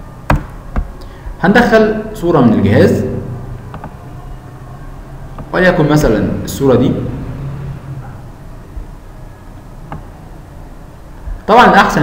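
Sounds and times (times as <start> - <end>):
faint microphone hiss: 0.0 - 12.0
low hum: 2.2 - 11.5.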